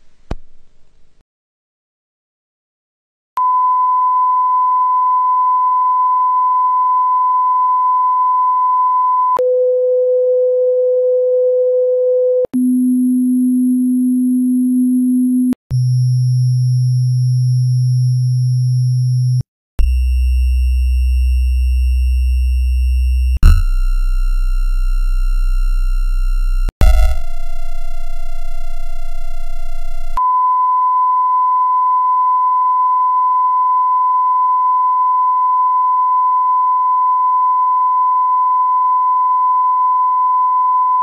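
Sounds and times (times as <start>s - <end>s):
pure tones stepping down: 23.4s - 30.2s.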